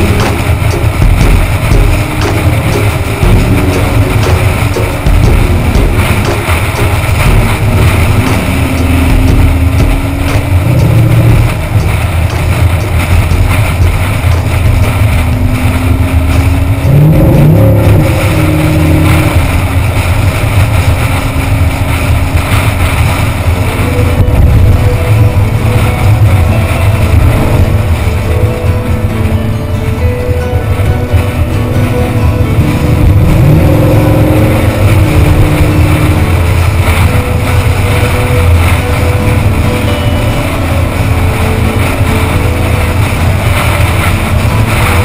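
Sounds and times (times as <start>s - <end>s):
car engine cruising: 0.0s - 45.0s
road rumble: 0.0s - 45.0s
wind noise: 0.0s - 45.0s.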